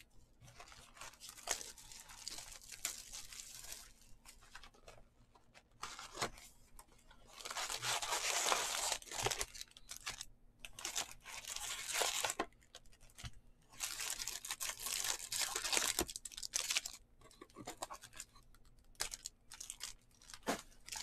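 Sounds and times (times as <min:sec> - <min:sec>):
foil packs crinkling: 0:00.5 - 0:04.9, 0:07.3 - 0:12.6, 0:13.8 - 0:17.0, 0:18.9 - 0:21.0.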